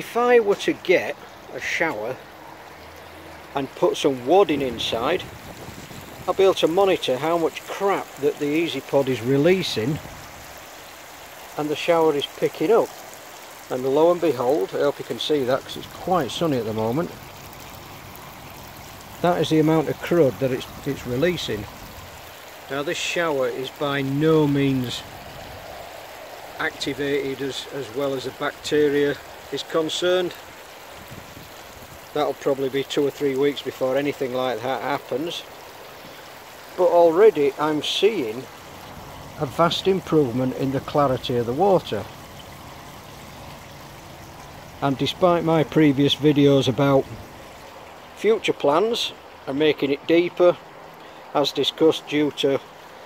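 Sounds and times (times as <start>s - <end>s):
water spraying from pipe holes: 0.0s - 53.0s
water trickling: 0.0s - 53.0s.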